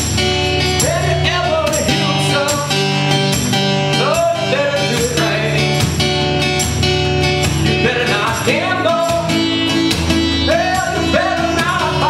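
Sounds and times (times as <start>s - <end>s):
strummed acoustic guitar: 0.0s - 12.0s
person singing: 0.8s - 3.3s, 3.9s - 5.9s, 7.6s - 9.8s, 10.4s - 12.0s.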